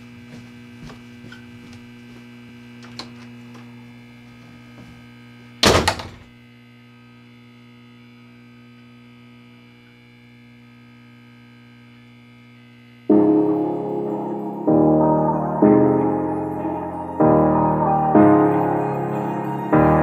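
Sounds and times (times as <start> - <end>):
footsteps on wooden stairs: 0.0 - 2.6
electrical hum: 0.0 - 20.0
door shutting with thud: 5.6 - 6.3.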